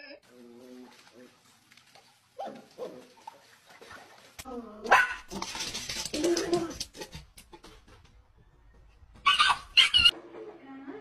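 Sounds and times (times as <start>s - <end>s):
puppy whimpering and yelping: 9.3s - 10.1s.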